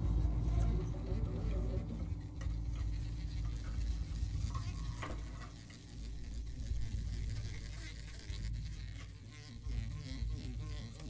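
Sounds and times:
low rumble: 0:00.0 - 0:05.4
rustling scraping percussion: 0:00.0 - 0:11.0.

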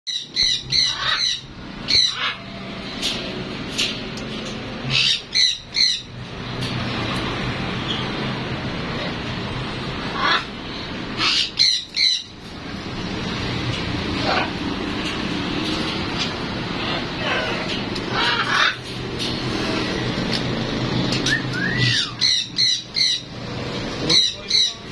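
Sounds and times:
macaw squawking: 0:00.1 - 0:02.5, 0:04.9 - 0:06.1, 0:11.2 - 0:12.4, 0:17.1 - 0:18.8, 0:21.6 - 0:23.3, 0:24.1 - 0:24.9
macaw whistle: 0:21.3 - 0:22.2.

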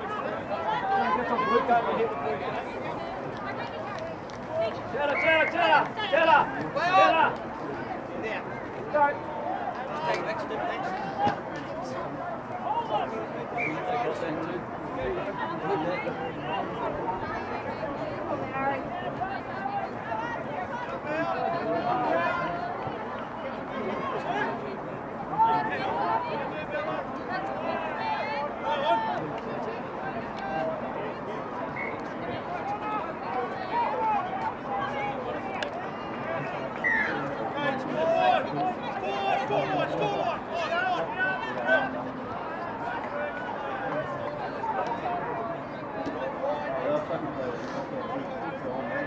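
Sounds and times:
players calling and chattering: 0:00.0 - 0:49.0.

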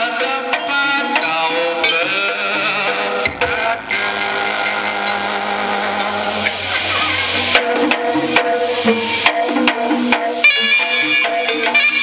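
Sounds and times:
buzzy held music tones: 0:00.4 - 0:12.0.

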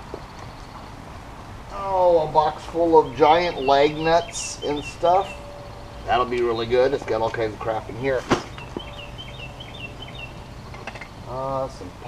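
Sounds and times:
bird chirping: 0:00.0 - 0:01.0, 0:01.7 - 0:11.9
low outdoor rumble: 0:00.0 - 0:12.0.

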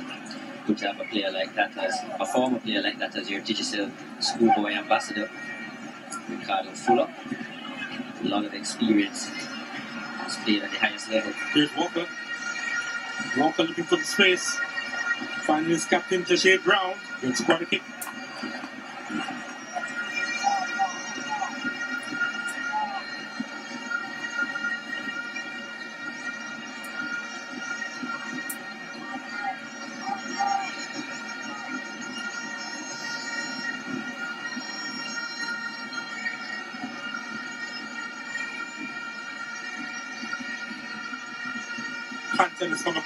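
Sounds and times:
crowd murmur: 0:00.0 - 0:43.0.

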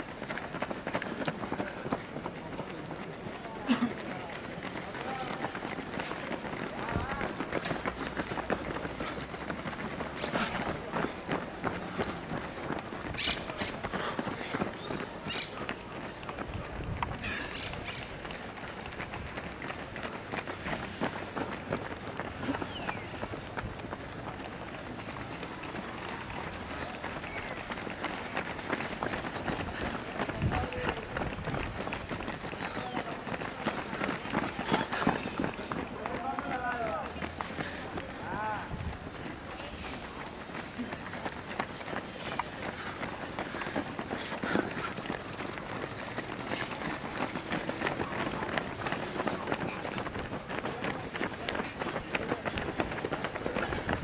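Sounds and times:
runners' footsteps on asphalt: 0:00.0 - 0:54.0
voices in background: 0:00.8 - 0:54.0.

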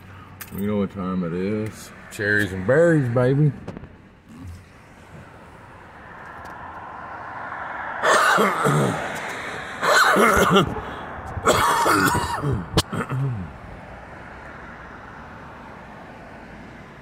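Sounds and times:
man coughing hard: 0:08.0 - 0:09.2, 0:09.8 - 0:10.8, 0:11.4 - 0:13.5.

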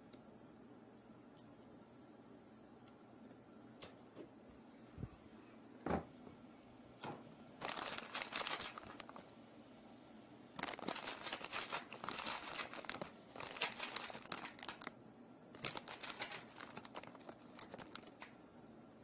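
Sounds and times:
packaging crinkling: 0:07.6 - 0:09.4, 0:10.6 - 0:18.4.

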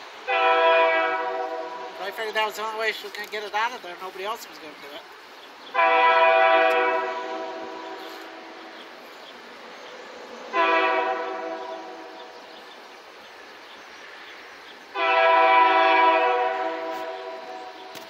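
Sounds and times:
locomotive air horn blasts: 0:00.3 - 0:02.2, 0:05.7 - 0:08.8, 0:10.5 - 0:12.2, 0:15.0 - 0:17.8.

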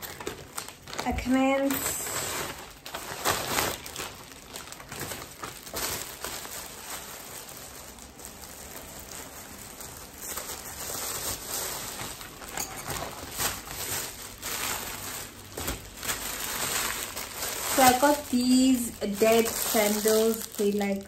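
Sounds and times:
plastic bag rustling: 0:00.0 - 0:21.0.

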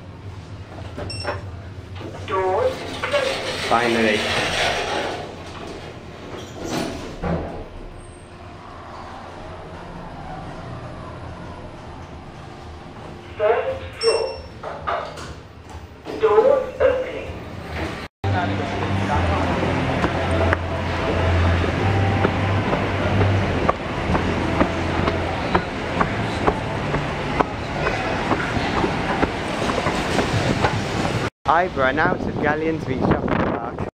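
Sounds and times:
moving walkway rumble: 0:00.0 - 0:14.0, 0:14.6 - 0:33.9
lift arrival chime: 0:13.8 - 0:14.6.

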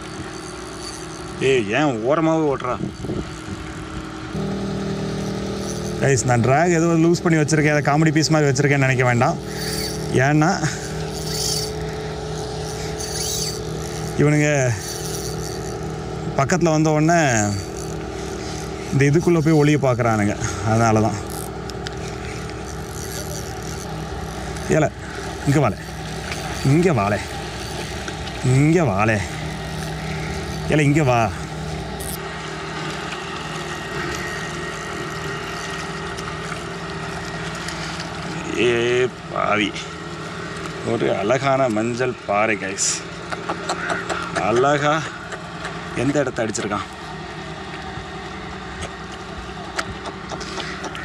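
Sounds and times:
engine running steadily: 0:00.0 - 0:51.0.

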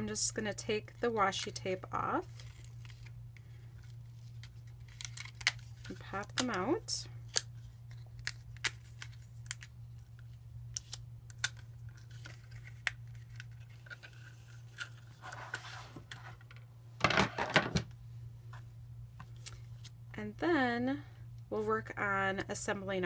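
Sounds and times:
low steady hum: 0:00.0 - 0:23.0.

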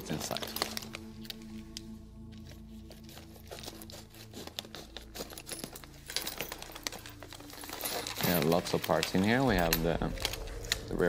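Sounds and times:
plastic bag crinkling: 0:00.0 - 0:11.0
soft background music: 0:00.0 - 0:11.0.

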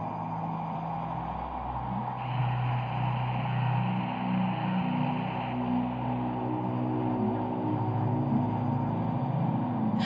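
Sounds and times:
sustained synth notes: 0:00.0 - 0:10.0.

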